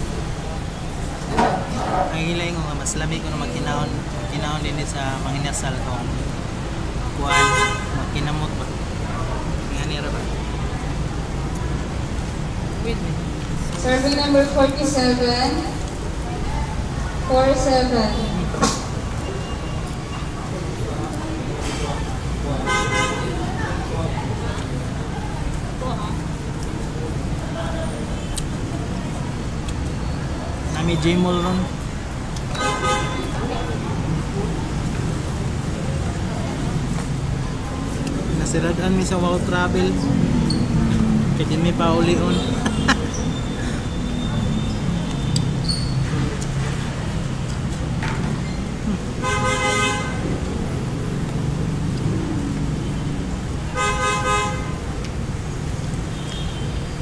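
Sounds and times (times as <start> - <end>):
busy eatery rumble: 0.0 - 57.0.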